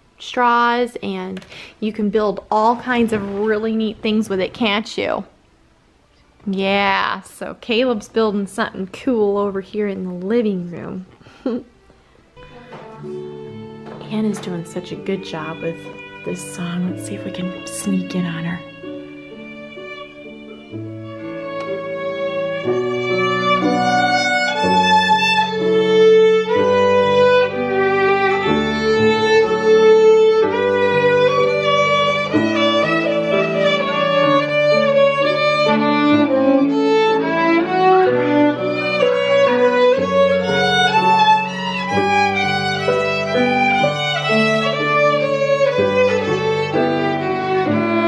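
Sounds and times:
bluegrass violin tune: 0:12.0 - 0:48.0.

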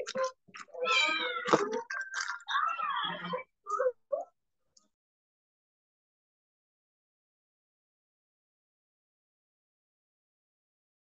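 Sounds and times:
cat meowing: 0:00.7 - 0:01.7.

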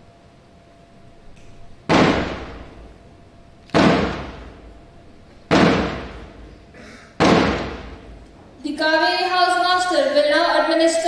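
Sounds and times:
loud crashing hits: 0:01.9 - 0:02.9, 0:03.8 - 0:04.7, 0:05.5 - 0:06.5, 0:07.2 - 0:08.1.

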